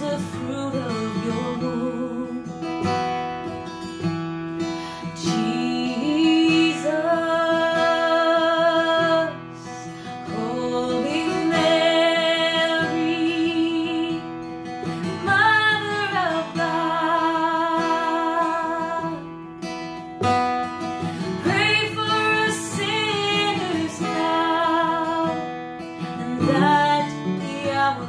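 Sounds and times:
woman singing a hymn: 0.0s - 2.5s, 5.2s - 14.3s, 15.1s - 19.2s, 21.4s - 25.4s, 26.0s - 28.0s
strummed acoustic guitar: 0.0s - 28.0s.

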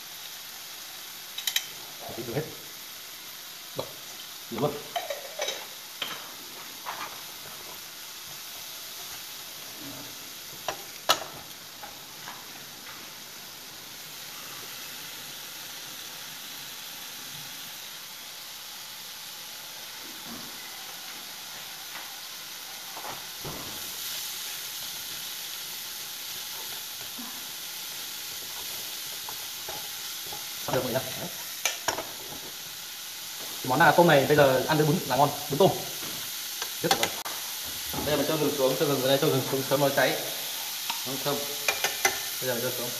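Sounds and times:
shrimp sizzling in oil: 0.0s - 42.9s
wooden utensil clattering in pan: 4.9s - 7.2s.

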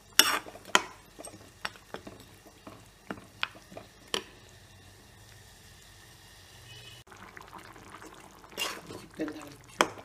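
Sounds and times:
ladle scraping a pan: 0.0s - 1.4s, 8.5s - 10.0s
ladle stirring bubbling curry: 0.1s - 4.5s, 7.2s - 10.0s.

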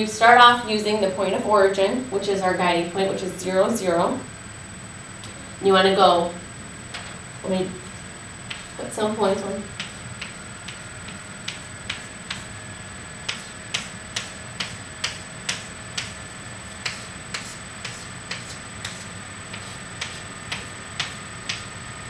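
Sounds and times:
chalk tapping on a chalkboard: 9.8s - 12.5s, 13.2s - 16.2s, 16.8s - 21.7s.

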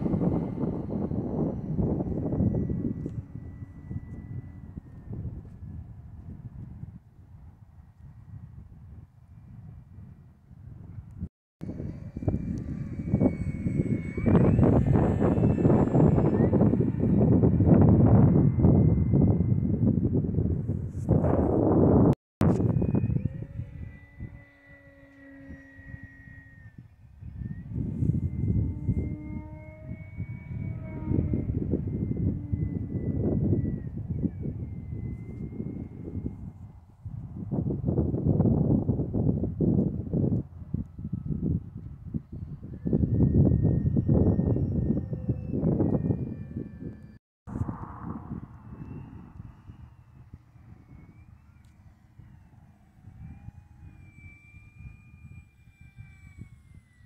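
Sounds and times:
gusty rushing wind noise: 0.0s - 55.4s
model plane propeller whine: 0.0s - 57.0s.

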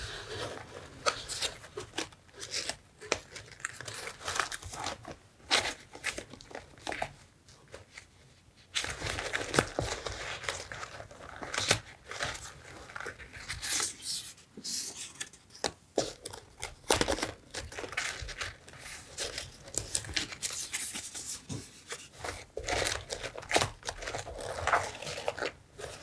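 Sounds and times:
paper rustling and crinkling: 0.0s - 26.0s.

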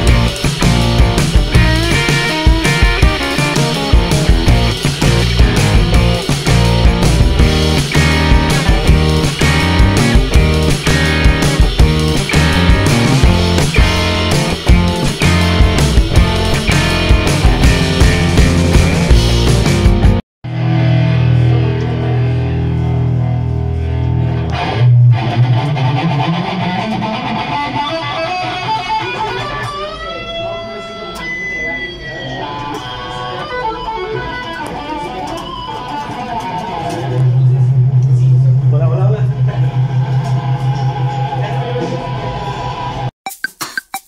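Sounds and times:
electric guitar playing: 0.0s - 43.0s.

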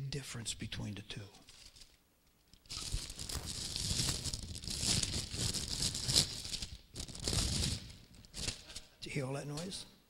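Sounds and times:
plastic bag crinkling: 1.5s - 8.8s.

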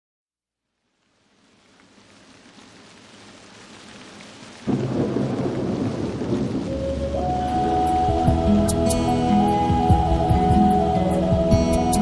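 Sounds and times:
soft music with held tones: 6.7s - 12.0s.

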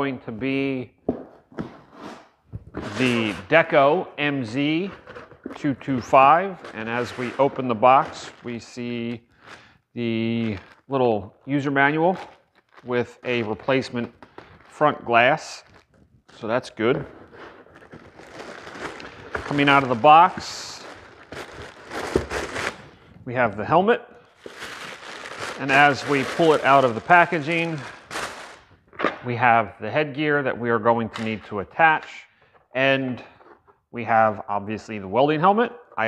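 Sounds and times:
plastic packaging crinkling: 4.8s - 9.7s, 10.3s - 10.9s, 11.9s - 23.2s, 24.2s - 28.8s.

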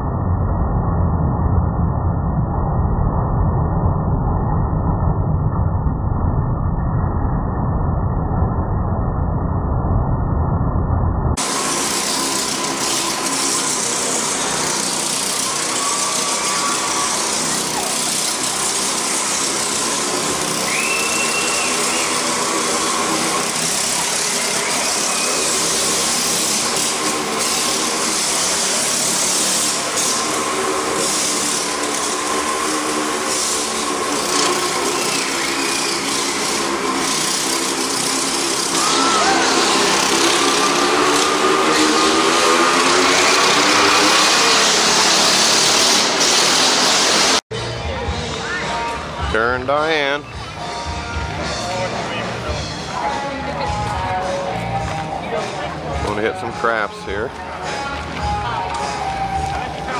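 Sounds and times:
motorcycle and go-kart engines: 11.4s - 59.9s.

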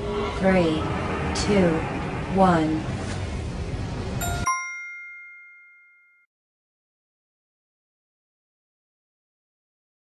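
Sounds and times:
steady noisy background effect: 0.0s - 4.4s
bell-like ding: 4.2s - 6.3s.

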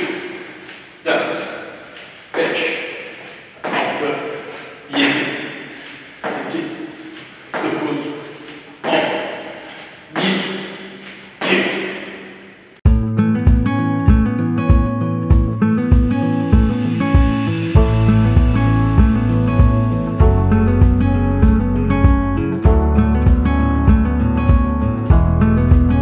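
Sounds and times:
man counting aloud: 0.0s - 1.7s, 2.3s - 12.3s.

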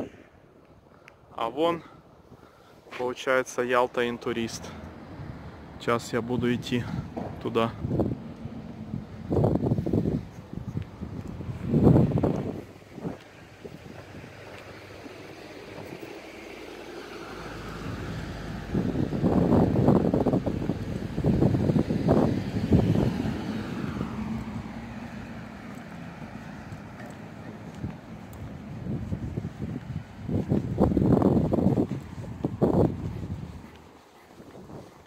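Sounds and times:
wind buffeting microphone: 4.0s - 16.3s, 17.4s - 35.0s
car driving past: 11.4s - 31.8s.

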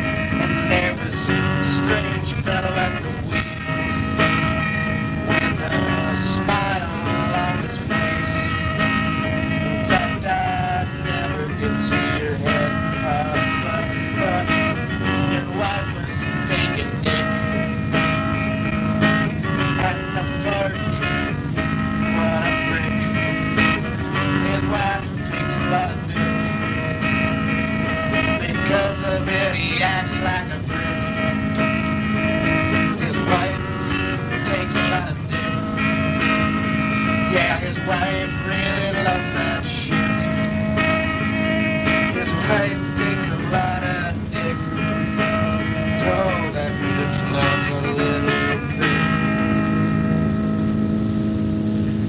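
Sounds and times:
acoustic guitar strumming: 0.0s - 52.0s.

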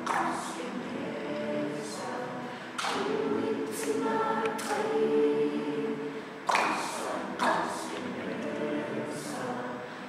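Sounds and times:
choir singing a cappella: 0.0s - 10.0s.

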